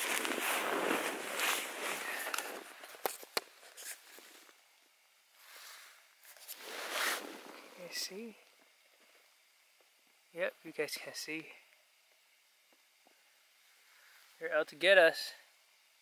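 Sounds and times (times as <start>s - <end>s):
nylon fabric rustling: 0.0s - 3.1s, 5.6s - 7.9s.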